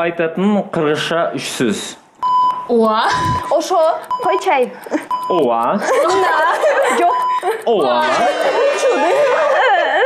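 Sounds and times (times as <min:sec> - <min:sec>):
short electronic beep: 0:02.2 - 0:05.6.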